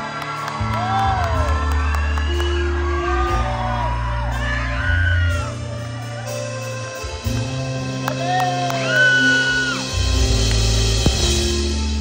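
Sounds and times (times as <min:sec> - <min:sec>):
live band holding low chord: 0:00.0 - 0:12.0.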